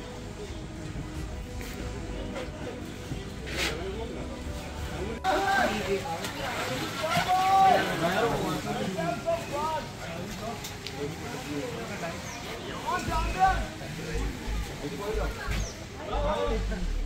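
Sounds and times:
indistinct voices talking and calling: 11.7 - 17.0.

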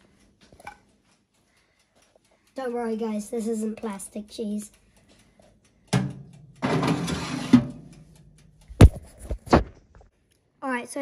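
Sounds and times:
pan scraping on metal: 6.6 - 7.8.

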